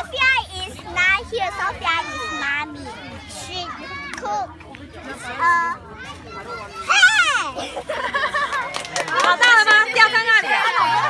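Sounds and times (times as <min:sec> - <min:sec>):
young children talking: 0:00.0 - 0:11.0.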